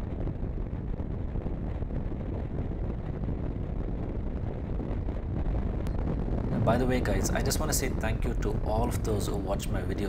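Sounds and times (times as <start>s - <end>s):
wind rush on microphone: 0.0s - 10.0s.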